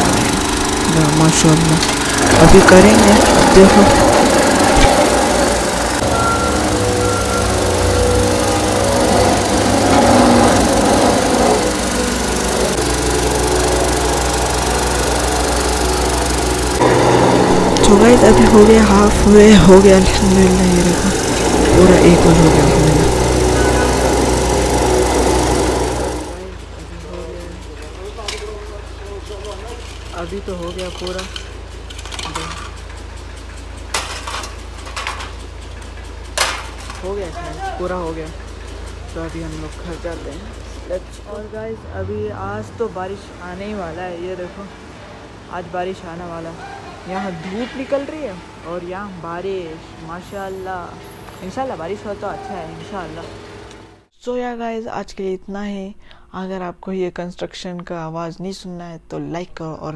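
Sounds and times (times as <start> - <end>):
road roller engine running: 0.0 - 54.1.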